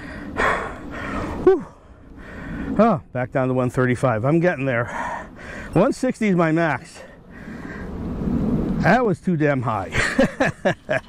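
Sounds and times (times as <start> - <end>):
man sighing: 0.0 - 2.0
man breathing hard: 0.0 - 2.8, 4.8 - 5.8, 7.1 - 8.1.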